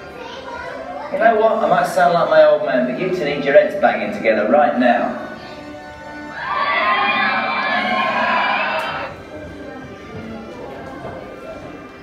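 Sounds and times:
music over loudspeakers: 0:06.2 - 0:09.4
crowd cheering: 0:06.4 - 0:09.2.

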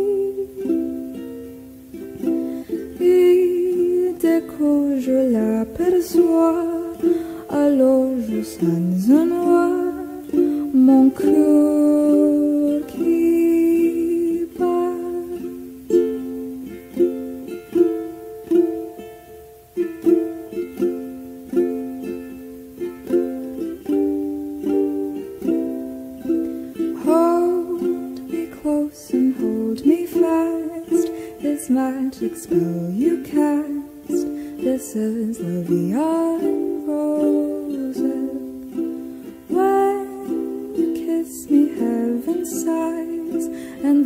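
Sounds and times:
person singing: 0:00.0 - 0:44.0
plucked acoustic strings: 0:00.0 - 0:44.0.

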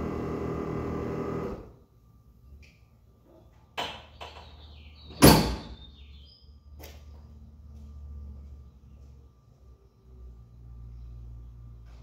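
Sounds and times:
tailgate slamming shut: 0:05.1 - 0:05.8.

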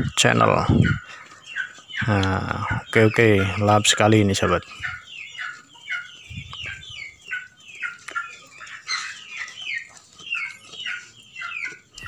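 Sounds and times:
birds chirping: 0:00.0 - 0:12.0.

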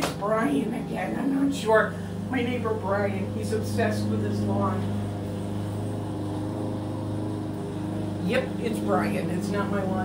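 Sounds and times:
lawn mower engine running: 0:00.0 - 0:10.0.

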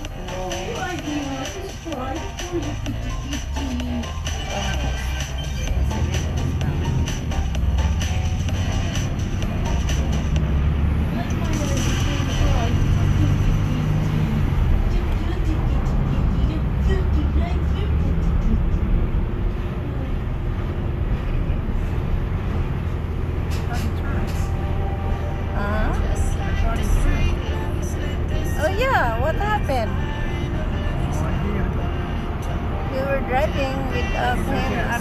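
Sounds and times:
music playing: 0:00.0 - 0:19.0, 0:23.5 - 0:35.0
car engine and tyres rumbling: 0:00.0 - 0:35.0.

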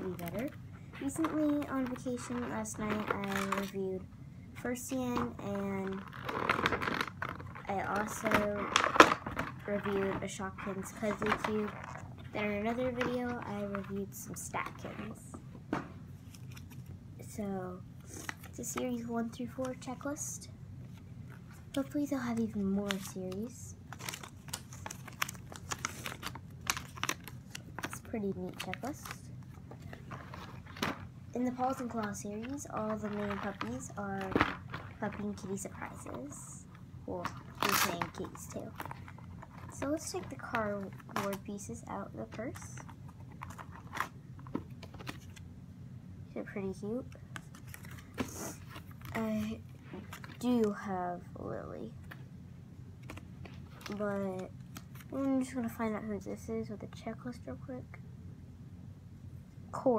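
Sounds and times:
low steady hum: 0:00.0 - 0:59.9
paper crinkling: 0:16.2 - 0:17.0, 0:20.9 - 0:36.5, 0:37.2 - 0:45.4, 0:47.1 - 0:50.8.

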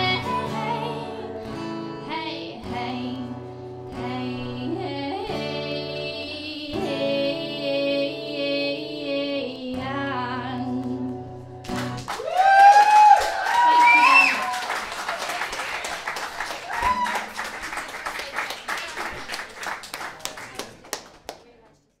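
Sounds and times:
audience clapping and cheering: 0:11.7 - 0:21.5
loud rising whoops: 0:12.1 - 0:14.8, 0:16.6 - 0:17.3.

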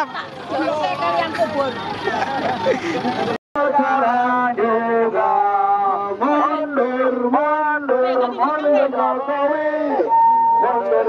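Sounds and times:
man singing through loudspeaker: 0:03.1 - 0:11.0.

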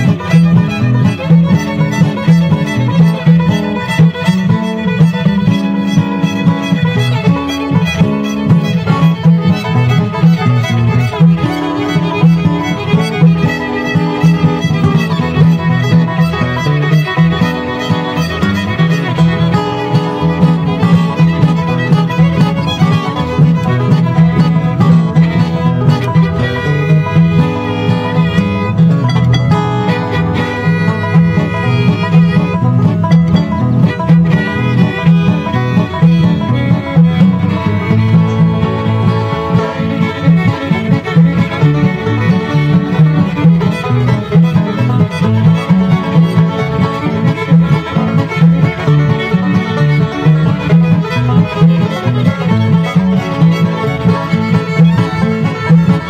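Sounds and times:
acoustic guitar: 0:00.0 - 0:56.0
banjo: 0:00.0 - 0:56.0
fiddle: 0:00.0 - 0:56.0
upright bass: 0:00.0 - 0:56.0.

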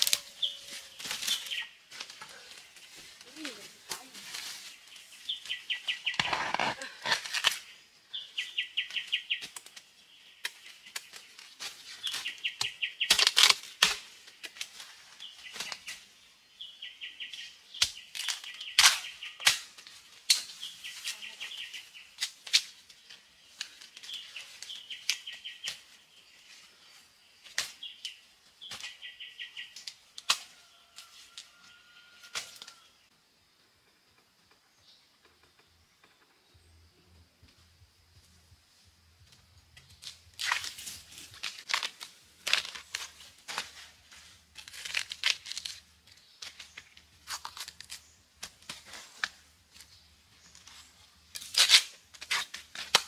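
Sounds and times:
dry leaf litter crackling: 0:00.0 - 0:07.6, 0:40.0 - 0:49.8.

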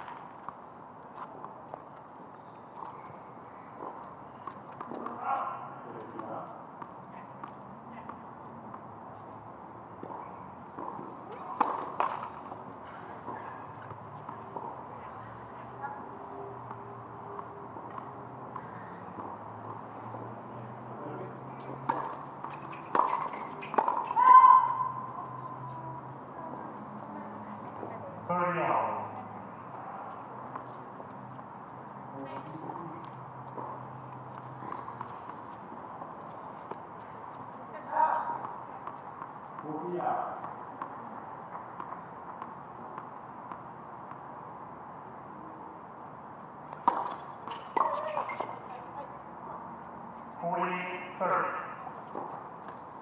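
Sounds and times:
tennis ball racquet hits: 0:10.8 - 0:14.7, 0:21.6 - 0:24.8, 0:46.7 - 0:48.7.

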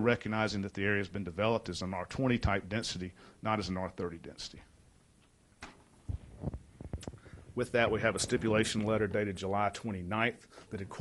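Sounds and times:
soft low thumps: 0:06.0 - 0:09.1.

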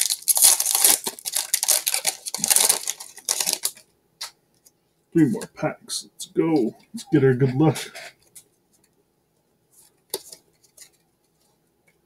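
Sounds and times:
foil card pack crackling: 0:00.0 - 0:03.8.

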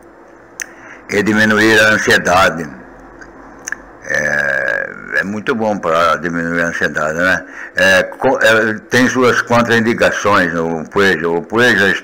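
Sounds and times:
man's held hesitation vowel: 0:04.0 - 0:05.4.

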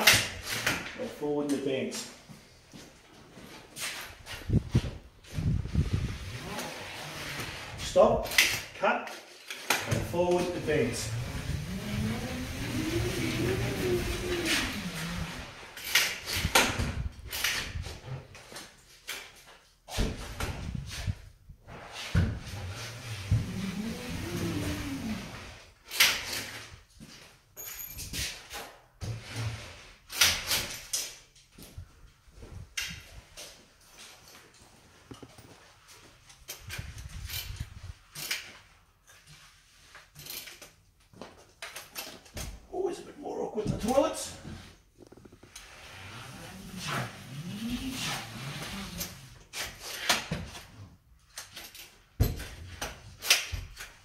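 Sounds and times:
drywall taper wheel whirring: 0:09.9 - 0:16.2, 0:22.4 - 0:25.6, 0:45.0 - 0:49.5.

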